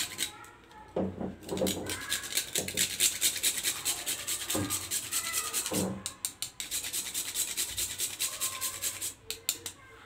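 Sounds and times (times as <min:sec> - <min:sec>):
nutmeg scraping on metal grater: 0:01.6 - 0:05.8.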